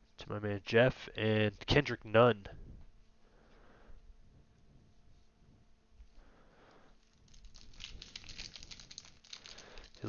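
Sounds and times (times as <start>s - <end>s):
foil wrapper crinkling: 7.0s - 10.0s.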